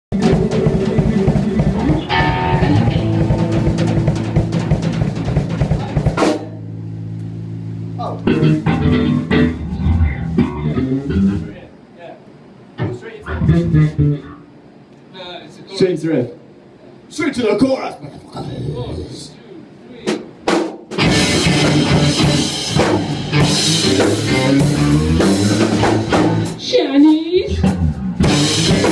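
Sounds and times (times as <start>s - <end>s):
rock band playing: 0.1s - 11.6s, 12.8s - 14.4s, 20.7s - 26.8s, 27.5s - 28.9s.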